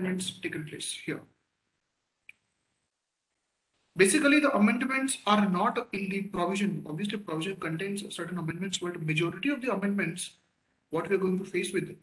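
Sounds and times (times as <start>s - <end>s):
man speaking: 0.0s - 1.3s, 4.0s - 10.4s, 11.0s - 12.0s
faint click: 2.2s - 2.5s.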